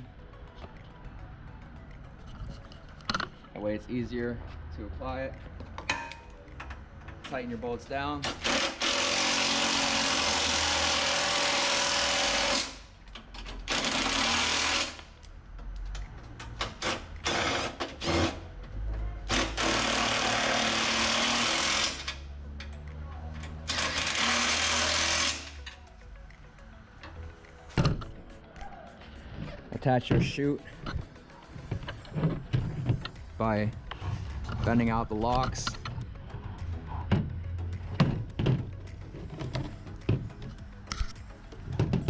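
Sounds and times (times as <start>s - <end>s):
impact driver running: 8.3s - 12.8s, 13.7s - 15.0s, 19.3s - 22.1s, 23.7s - 25.6s.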